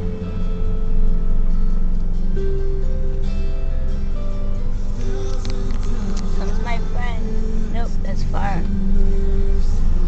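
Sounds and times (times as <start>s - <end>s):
car road and engine rumble: 0.0s - 10.0s.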